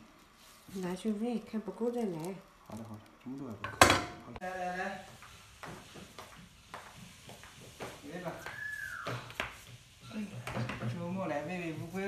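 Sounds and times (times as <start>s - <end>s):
slipper footsteps on tiles: 5.5s - 12.0s.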